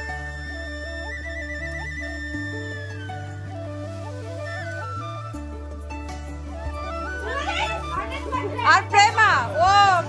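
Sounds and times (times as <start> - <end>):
background music: 0.0 - 10.0
girls chattering: 7.1 - 10.0.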